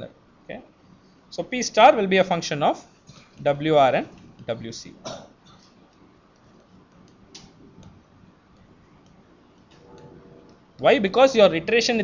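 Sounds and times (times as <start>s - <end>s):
low room hiss: 0.0s - 12.0s
stylus tapping tablet screen: 5.9s - 10.9s.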